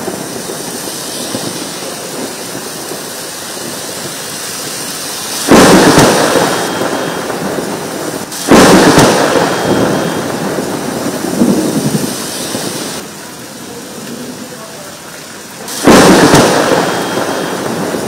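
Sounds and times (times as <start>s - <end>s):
thunderclaps rumbling: 0.0s - 14.9s, 15.5s - 18.0s
heavy rain on paving: 0.0s - 18.0s.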